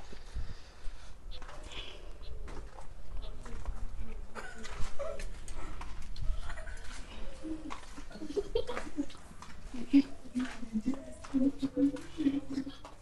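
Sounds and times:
low background noise: 0.0s - 13.0s.

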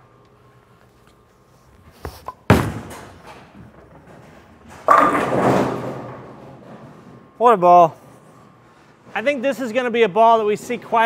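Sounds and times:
bowling ball thud: 2.0s - 7.2s
bowling ball rolling: 2.0s - 7.4s
bowling pins clattering: 2.1s - 7.4s.

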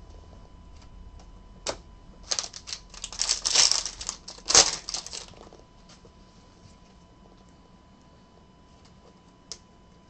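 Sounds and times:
foil wrapper crinkling and tearing: 2.2s - 5.5s.

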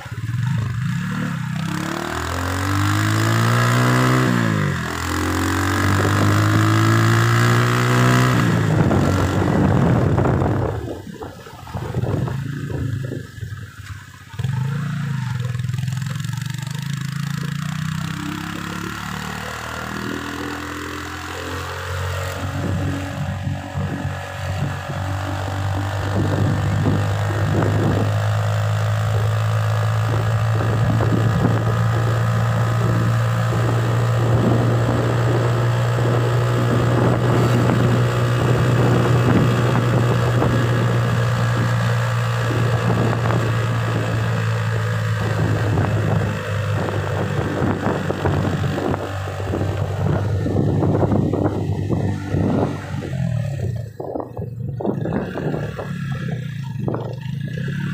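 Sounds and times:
car engine and tyre drone: 0.0s - 57.9s.

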